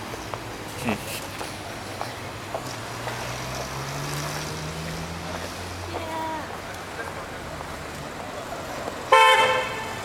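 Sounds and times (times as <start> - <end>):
city background noise: 0.0 - 10.0.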